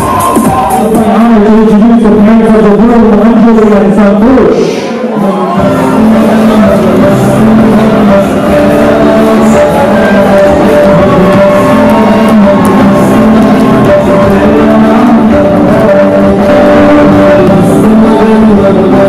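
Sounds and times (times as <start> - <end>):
loud music with singing: 0.0 - 19.0.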